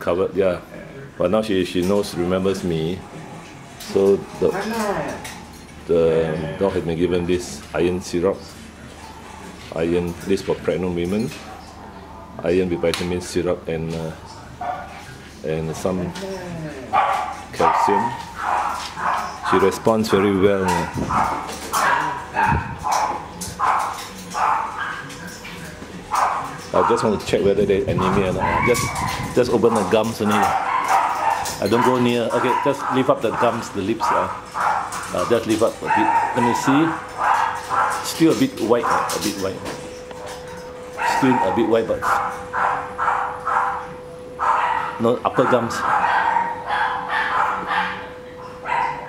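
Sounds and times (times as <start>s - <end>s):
dog barking: 14.6s - 15.0s, 16.9s - 25.4s, 26.1s - 27.2s, 28.0s - 38.1s, 38.8s - 39.4s, 40.2s - 49.0s.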